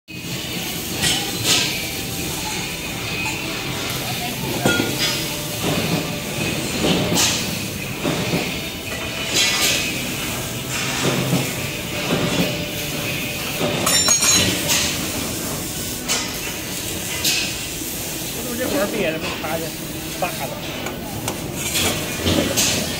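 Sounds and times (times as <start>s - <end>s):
steady background noise: 0.1s - 22.9s
steel tubes clanking: 0.2s - 22.9s.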